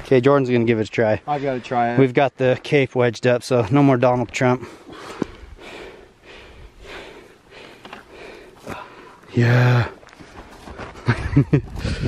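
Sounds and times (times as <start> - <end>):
man breathing hard: 4.6 - 11.0, 11.7 - 12.0.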